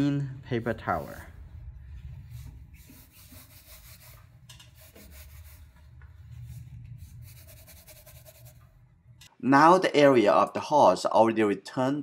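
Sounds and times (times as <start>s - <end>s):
paper towel rubbing wet paper: 0.6s - 8.6s.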